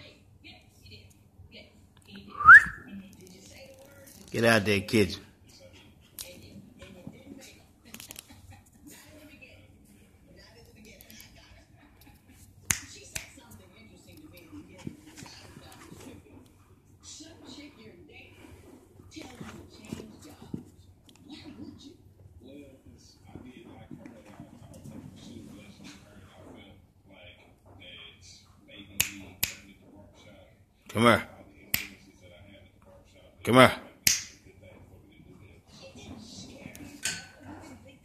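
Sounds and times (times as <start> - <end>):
finger snaps: 12.7 - 13.3, 31.7 - 32.0.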